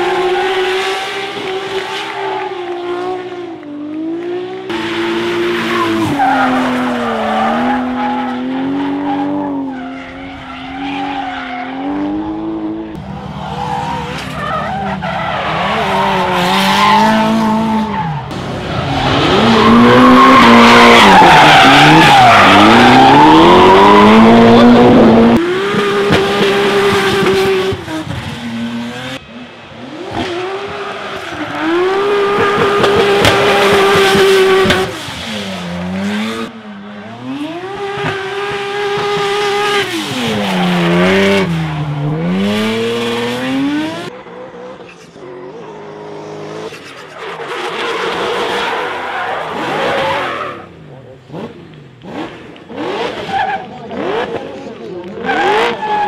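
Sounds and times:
car engines revving hard: 0.0s - 56.0s
tyres squealing and skidding: 4.7s - 24.9s, 26.0s - 51.4s, 52.7s - 56.0s.

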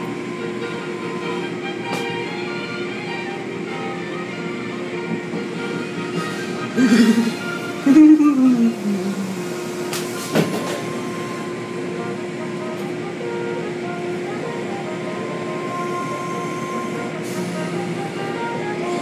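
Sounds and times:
steady machine hum: 0.0s - 19.0s.

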